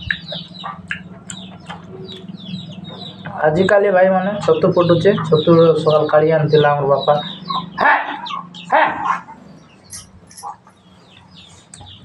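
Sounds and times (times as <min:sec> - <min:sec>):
faint high bird chirping: 0:00.0 - 0:12.0.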